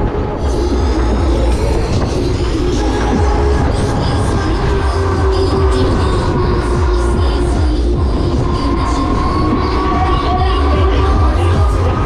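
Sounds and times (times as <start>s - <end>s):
ride machinery rumbling: 0.0s - 12.0s
steady machine whine: 0.0s - 12.0s.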